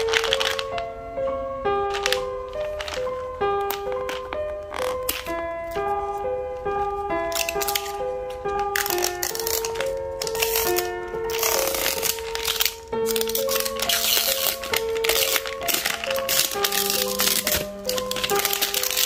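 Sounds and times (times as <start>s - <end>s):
plastic shrink-wrap crinkling: 0.0s - 1.0s, 1.8s - 19.0s
simple melody of single notes: 0.0s - 19.0s.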